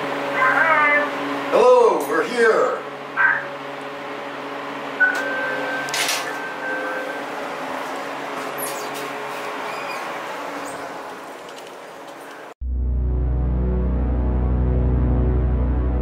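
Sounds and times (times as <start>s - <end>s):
steady low hum: 0.0s - 8.5s, 12.6s - 16.0s
intercom buzz tone: 0.2s - 1.5s, 2.6s - 3.7s, 4.9s - 7.4s, 12.6s - 16.0s.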